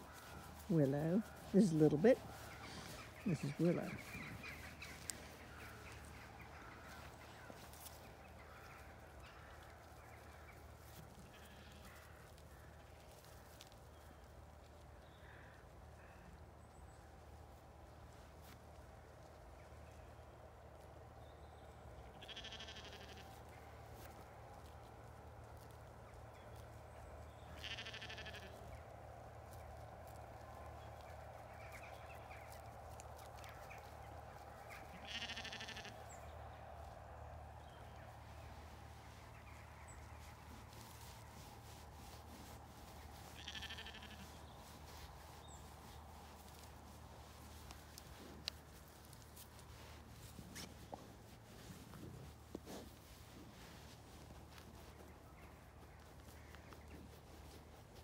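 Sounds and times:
sheep bleating: 0:11.3 - 0:12.1, 0:22.2 - 0:23.4, 0:27.6 - 0:28.6, 0:34.8 - 0:36.1, 0:43.2 - 0:44.4.

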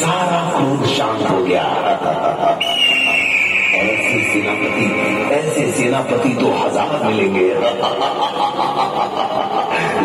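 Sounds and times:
voices: 0:00.0 - 0:10.0
high whistle-like tone: 0:02.6 - 0:05.1
soundtrack music over loudspeakers: 0:03.1 - 0:08.2.

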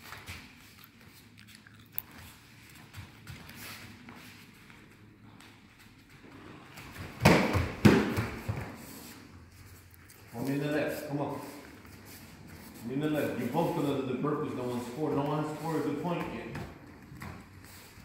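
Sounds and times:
footwork on foam mats: 0:00.0 - 0:18.0
kicks thudding on pads: 0:07.0 - 0:08.8.

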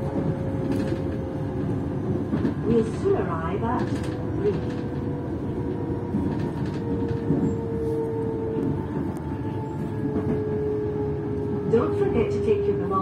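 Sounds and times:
train wheels rumbling on track: 0:00.0 - 0:13.0.

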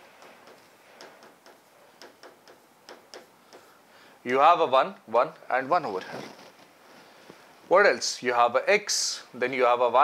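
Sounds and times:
chalk writing on chalkboard: 0:00.2 - 0:03.8.

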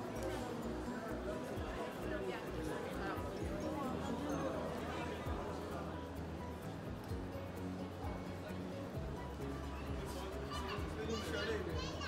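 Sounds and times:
crowd voices: 0:00.0 - 0:12.0.

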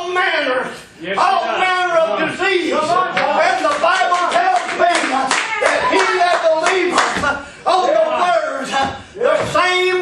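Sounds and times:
man's raised voice: 0:00.0 - 0:10.0
rhythmic hand-clapping: 0:03.1 - 0:07.5.

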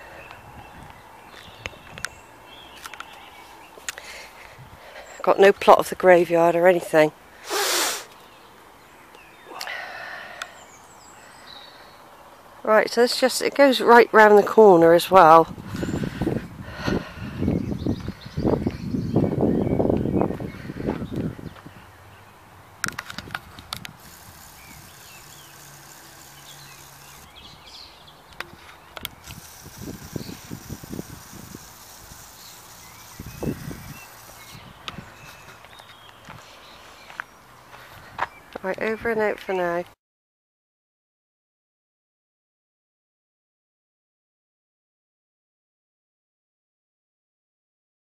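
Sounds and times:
wind buffeting microphone: 0:00.3 - 0:02.2, 0:04.5 - 0:04.8, 0:15.4 - 0:22.0, 0:22.8 - 0:35.5.

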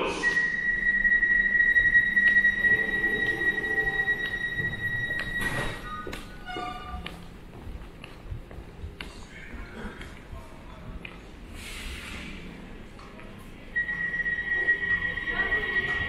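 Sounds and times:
short lower beeps: 0:00.2 - 0:06.1
high-pitched warning beep: 0:00.2 - 0:06.2, 0:13.8 - 0:16.0.

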